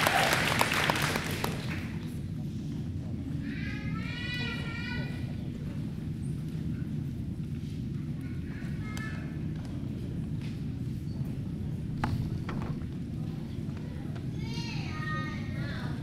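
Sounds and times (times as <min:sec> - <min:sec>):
low gymnasium rumble: 0:00.0 - 0:16.0
faint murmuring: 0:12.9 - 0:16.0.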